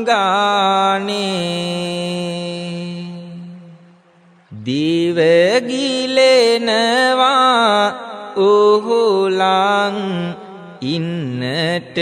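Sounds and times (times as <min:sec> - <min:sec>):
monk chanting: 0:00.0 - 0:12.0.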